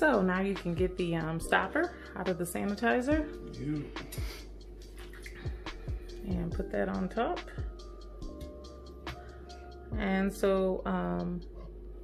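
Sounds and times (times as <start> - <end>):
background music with beat: 0.0 - 10.4.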